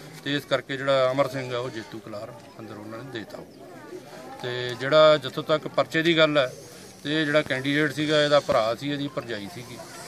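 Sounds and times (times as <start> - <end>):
man speaking: 4.4 - 10.0.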